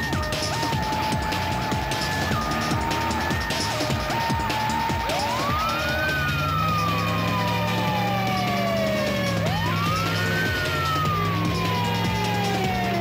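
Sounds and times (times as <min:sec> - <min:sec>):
police siren wailing: 0:00.0 - 0:13.0.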